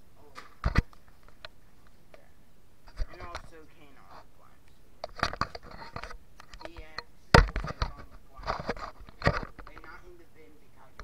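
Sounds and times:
camera handling knocks and clatter: 0.4 - 1.6, 5.0 - 9.9.

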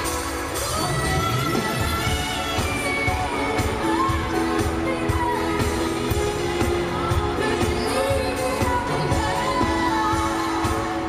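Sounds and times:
band playing pop: 0.0 - 11.0
woman singing: 0.0 - 11.0.

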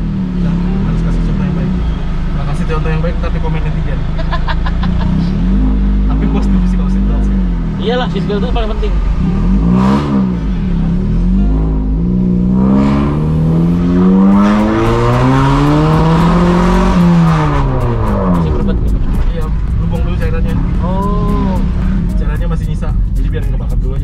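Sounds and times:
car engine accelerating: 0.0 - 24.0.

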